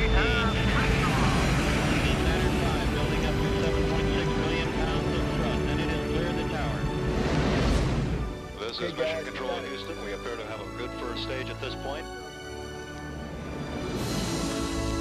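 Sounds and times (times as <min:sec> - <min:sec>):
rocket engines roaring: 0:00.0 - 0:11.8
music: 0:00.0 - 0:15.0.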